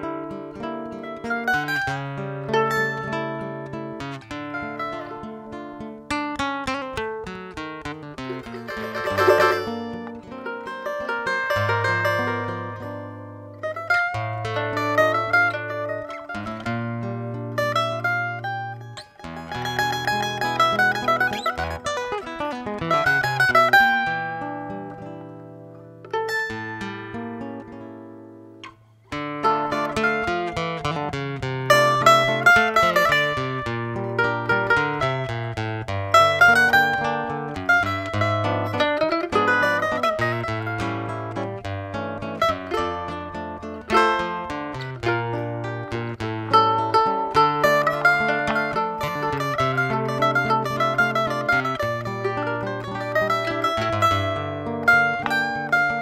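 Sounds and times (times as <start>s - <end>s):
classical guitar accompaniment: 0.0s - 56.0s
mandolin-like instrument picking melody: 0.0s - 56.0s.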